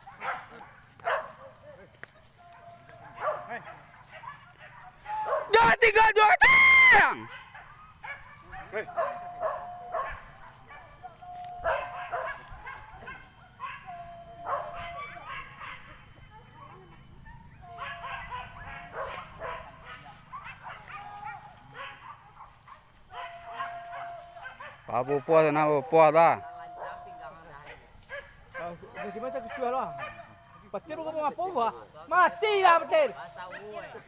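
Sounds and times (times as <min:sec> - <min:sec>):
dogs barking and yelping: 0:00.0 - 0:05.8, 0:07.0 - 0:34.0.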